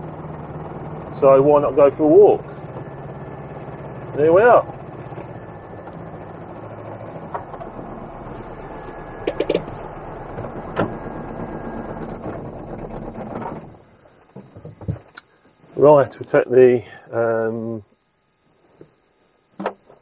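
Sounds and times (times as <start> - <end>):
diesel engine running: 0.0 - 15.0.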